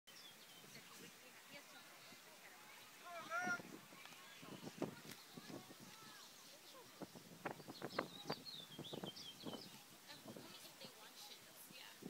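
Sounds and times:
small bird chirping: 6.3 - 10.8.

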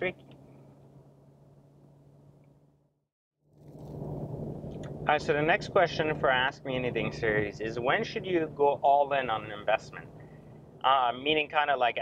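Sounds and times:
car cabin drone: 0.0 - 2.9, 3.5 - 12.0.

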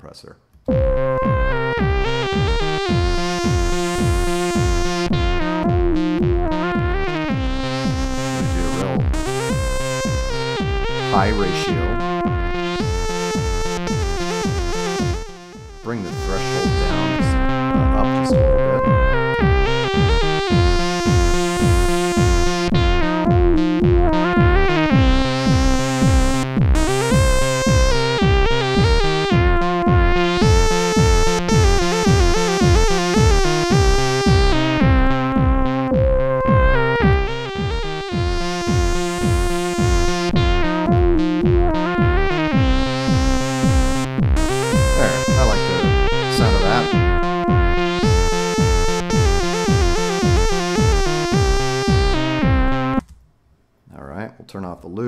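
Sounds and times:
high synth lead with filter sweep: 0.7 - 53.0
kick drum pulse: 0.7 - 53.0
sustained synth bass line: 0.7 - 53.0
electronic synthesizer loop: 0.7 - 53.1.

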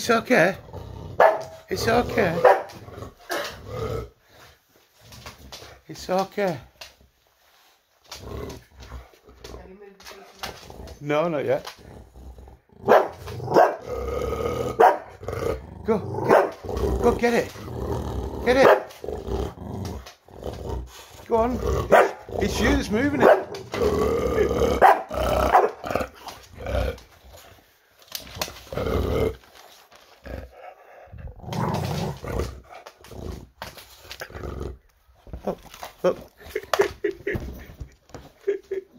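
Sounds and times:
dog making throaty sounds: 0.0 - 5.8, 8.0 - 38.9.

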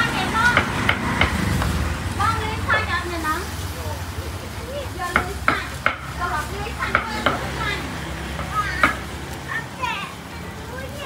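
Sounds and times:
pork sizzling on a grill: 0.0 - 11.0.

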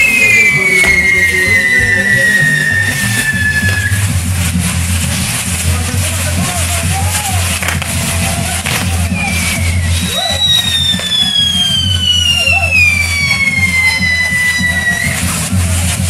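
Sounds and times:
loud music with bass: 0.0 - 16.0
whistling firework: 0.0 - 16.0.

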